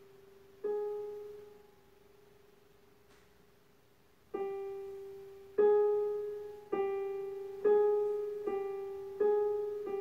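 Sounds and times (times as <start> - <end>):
digital piano note: 0.0 - 1.7.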